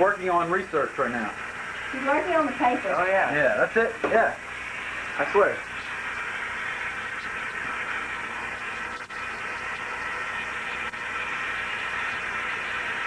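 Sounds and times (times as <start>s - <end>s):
faucet water splashing into sink: 0.0s - 13.0s.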